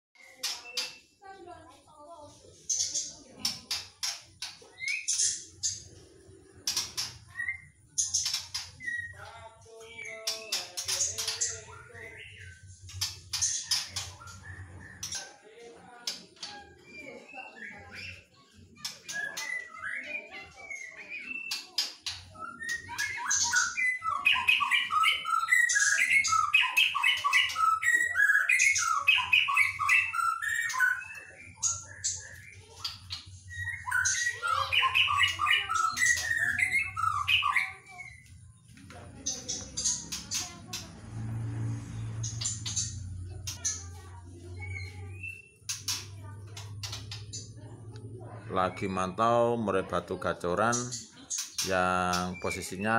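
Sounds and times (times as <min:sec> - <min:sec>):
bird calls and clicks: 0:00.2 - 0:49.0, 0:50.1 - 0:52.9
bird warbling song: 0:00.2 - 0:52.9.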